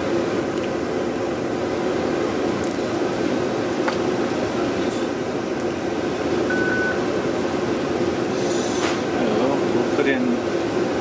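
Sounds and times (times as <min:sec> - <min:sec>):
fan noise: 0:00.0 - 0:11.0
short high beep: 0:06.5 - 0:07.0.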